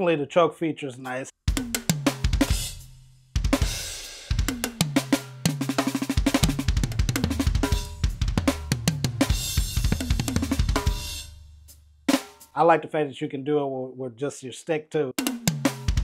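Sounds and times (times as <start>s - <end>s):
electronic drum fills: 1.5s - 2.8s, 3.4s - 11.2s.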